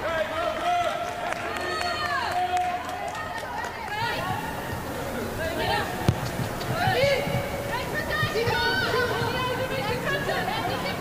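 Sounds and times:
stadium background noise: 0:00.0 - 0:11.0
sharp claps: 0:06.0 - 0:07.5.

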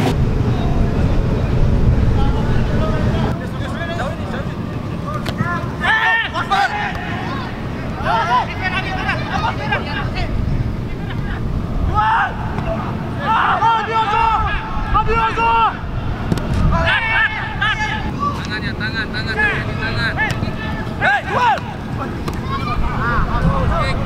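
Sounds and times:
players shouting: 0:03.0 - 0:24.0.

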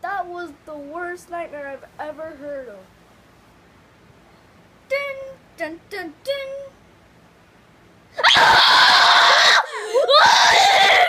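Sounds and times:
child screaming: 0:08.2 - 0:11.0.

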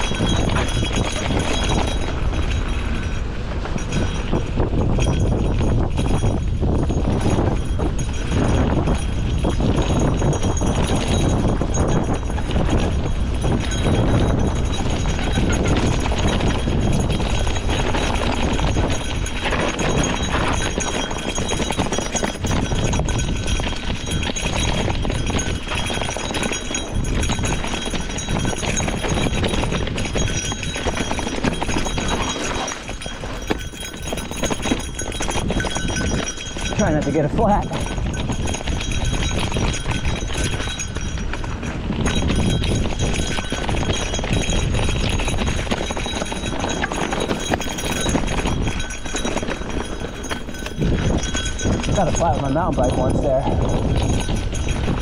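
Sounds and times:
bike rattling over rough ground: 0:00.0 - 0:55.0.

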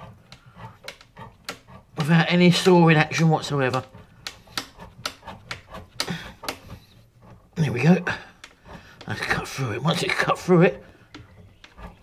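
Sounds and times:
pipe cutter clicking on copper pipe: 0:00.0 - 0:02.8, 0:03.4 - 0:07.5.

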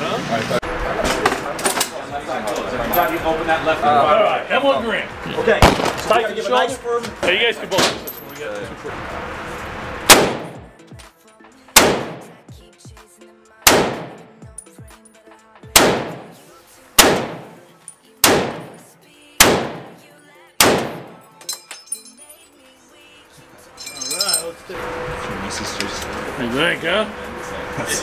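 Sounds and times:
rifle shots echoing indoors: 0:10.1 - 0:10.6, 0:11.8 - 0:12.3, 0:13.7 - 0:14.2, 0:15.8 - 0:16.4, 0:17.0 - 0:18.8, 0:19.4 - 0:20.0, 0:20.6 - 0:21.2.

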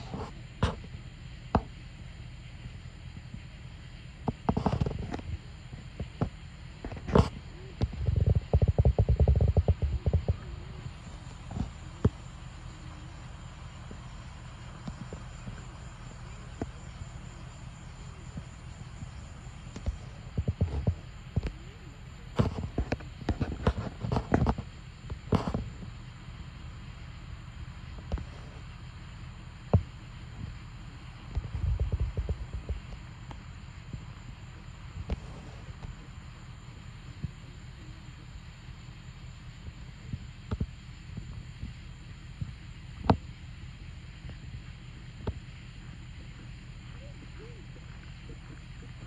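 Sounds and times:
wind rumble on microphone: 0:04.2 - 0:26.0, 0:29.7 - 0:38.0
horse hooves thudding on sand: 0:06.0 - 0:25.9, 0:31.2 - 0:36.2.

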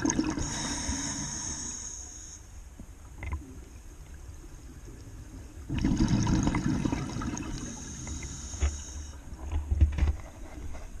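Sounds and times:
gurgling exhaled bubbles: 0:00.0 - 0:01.2, 0:05.7 - 0:08.4
regulator hiss: 0:00.3 - 0:02.7, 0:07.4 - 0:09.4.

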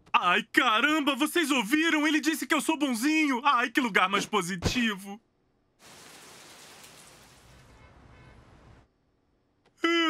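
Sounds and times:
rain pattering: 0:05.8 - 0:08.8.

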